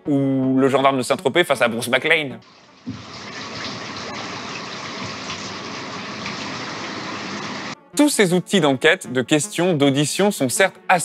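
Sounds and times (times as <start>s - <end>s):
showers spraying on tiles: 2.5s - 7.8s.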